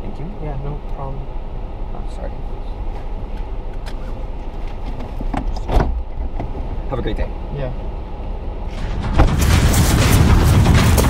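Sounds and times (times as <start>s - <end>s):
car cabin rumble: 1.9s - 7.3s.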